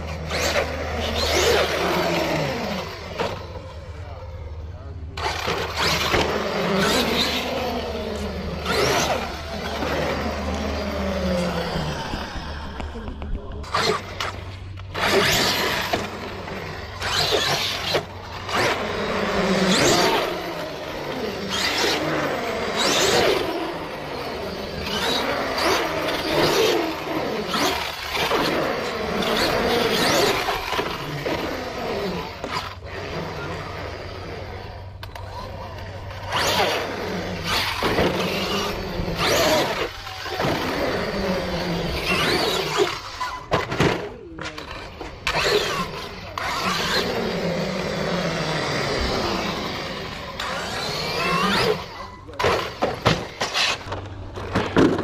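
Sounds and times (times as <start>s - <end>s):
electric motor whining: 0.0s - 54.9s
tyres on concrete: 5.2s - 55.0s.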